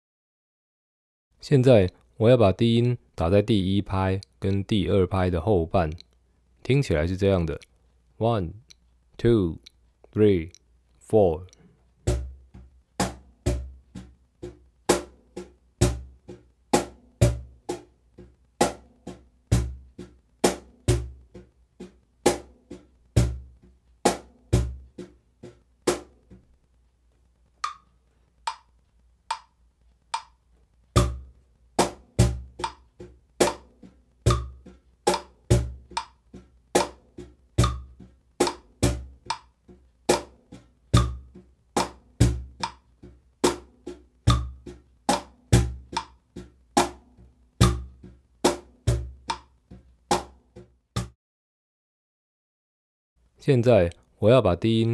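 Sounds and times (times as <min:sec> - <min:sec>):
light ticks: 0:05.9 - 0:06.2, 0:07.4 - 0:11.7, 0:26.5 - 0:30.7
cajon played with hands: 0:12.0 - 0:26.5, 0:31.0 - 0:49.5.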